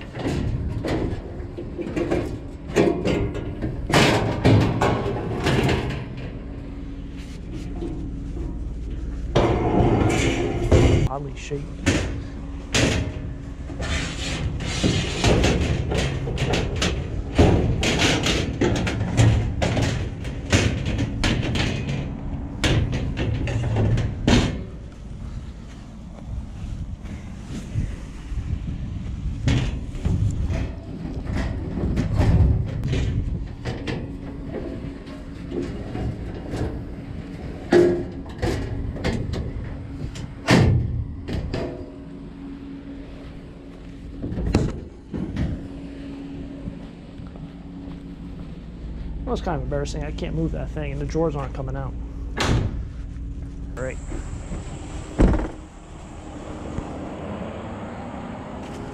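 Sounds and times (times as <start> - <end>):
metal filing cabinet clanking: 0.0 - 24.9, 29.4 - 53.0, 54.0 - 58.9.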